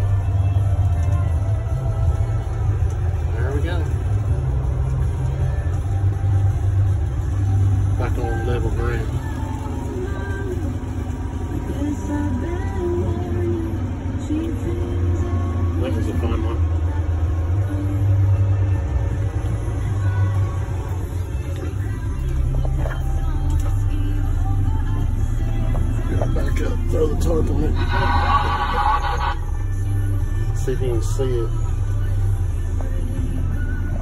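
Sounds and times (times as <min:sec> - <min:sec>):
diesel truck engine rumble: 0:00.0 - 0:34.0
radio music: 0:00.0 - 0:34.0.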